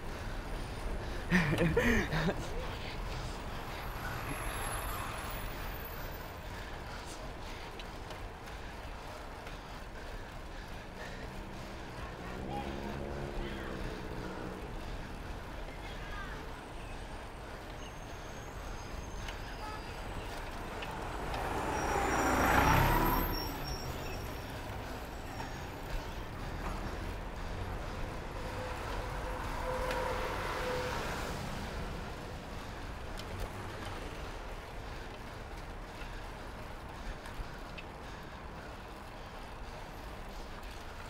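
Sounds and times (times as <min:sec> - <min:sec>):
street traffic: 0:00.0 - 0:41.0
wind and road rumble: 0:00.0 - 0:41.0
car passing close: 0:11.0 - 0:15.1, 0:20.3 - 0:34.3.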